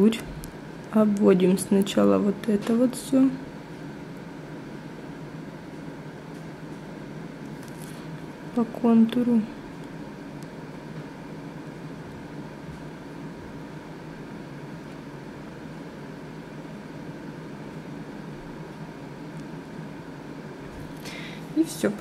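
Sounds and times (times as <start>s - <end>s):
background hum and hiss: 0.0s - 22.0s.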